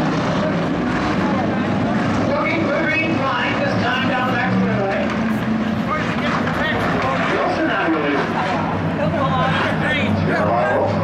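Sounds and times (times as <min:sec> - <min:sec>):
race car engines: 0:00.0 - 0:11.0
voices talking: 0:00.5 - 0:11.0.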